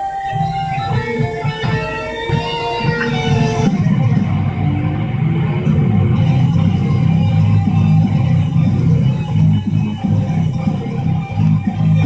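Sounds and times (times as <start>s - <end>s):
show-opening music with guitar: 0.0s - 12.0s.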